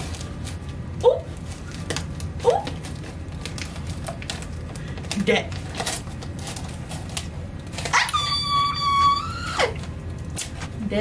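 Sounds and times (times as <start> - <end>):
wrapping paper rustling: 0.0 - 10.9
woman's excited squeal: 8.0 - 9.8.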